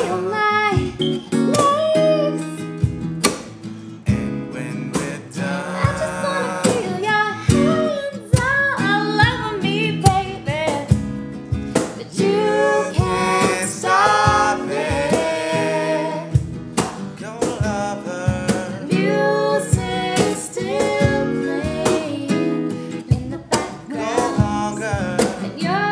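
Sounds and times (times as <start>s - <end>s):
woman singing: 0.0s - 2.6s, 5.4s - 11.0s, 11.7s - 16.4s, 18.5s - 25.9s
cajon beat played by hand: 0.0s - 25.9s
strummed acoustic guitar: 0.0s - 25.9s.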